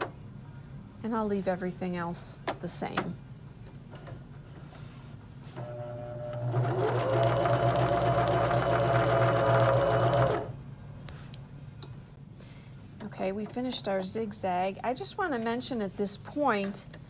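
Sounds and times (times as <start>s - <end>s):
electric sewing machine stitching: 5.6s - 10.5s.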